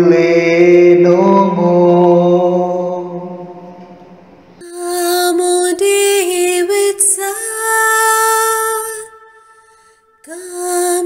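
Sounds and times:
slow devotional singing: 0.0 - 11.0.

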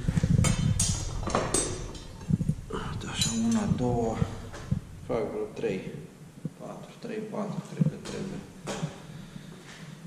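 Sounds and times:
steel rebar clinking: 3.1 - 3.9.

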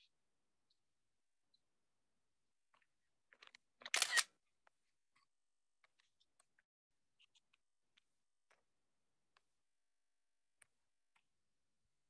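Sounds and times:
camera shutter double click: 3.9 - 4.3.

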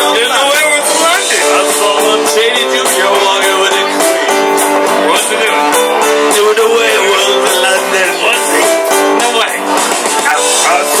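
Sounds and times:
men singing into microphones: 0.0 - 9.6
karaoke backing track with guitar: 0.0 - 11.0.

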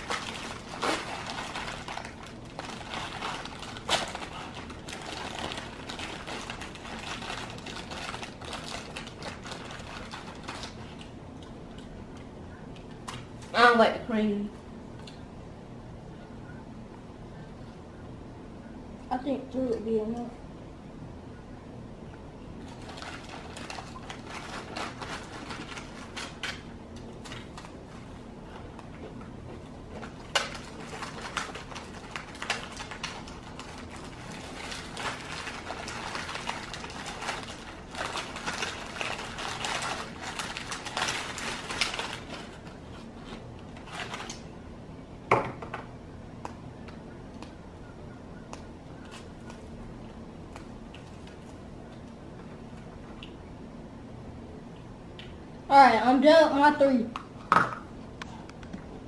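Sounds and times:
plastic packaging rustling: 0.0 - 11.2, 22.6 - 44.5
faint low hum: 0.0 - 59.0.

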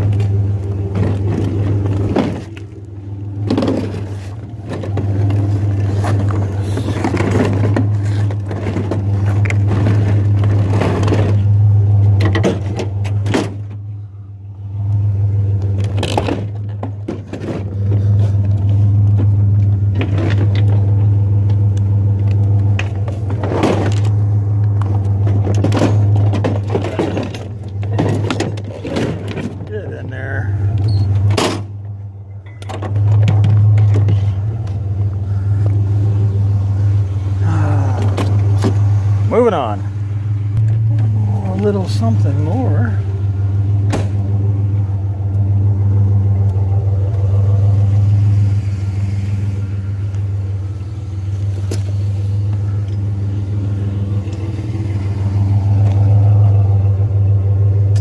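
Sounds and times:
metal clanks and knocks: 0.0 - 2.8, 3.4 - 13.8, 15.8 - 21.6, 24.8 - 30.1, 30.7 - 34.4
truck engine idling: 0.0 - 58.0.

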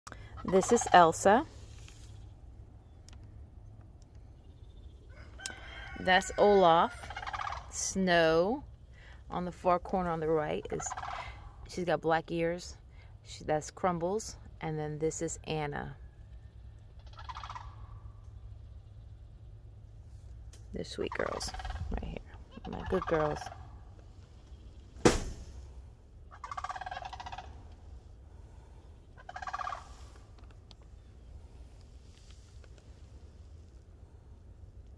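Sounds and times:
faint low rumble: 0.1 - 34.9
fowl rattling call: 5.2 - 7.8, 17.0 - 18.1, 21.1 - 23.8, 26.3 - 27.7, 29.2 - 30.2
sharp knock: 25.0 - 25.5.

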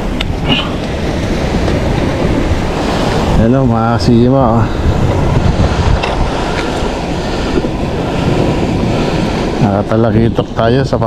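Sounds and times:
waves washing on shore: 0.0 - 11.0
wind buffeting microphone: 0.0 - 11.0.

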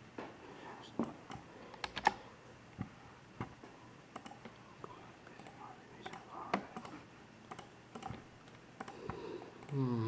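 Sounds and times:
computer keyboard keystrokes: 1.3 - 2.2, 4.1 - 4.4, 5.4 - 8.2.

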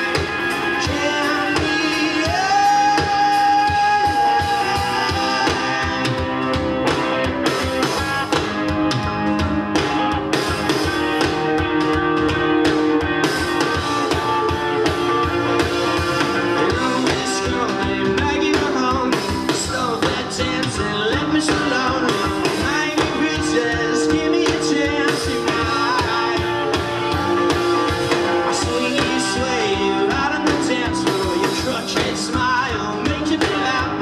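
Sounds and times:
live rock band playing: 0.0 - 34.0.

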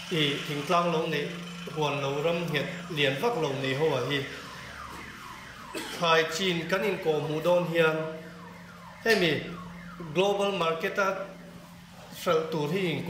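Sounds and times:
man speaking into a microphone: 12.1 - 13.0.

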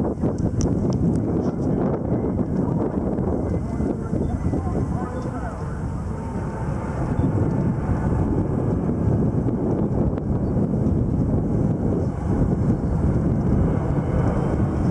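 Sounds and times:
jet engines rumbling: 0.0 - 14.9.

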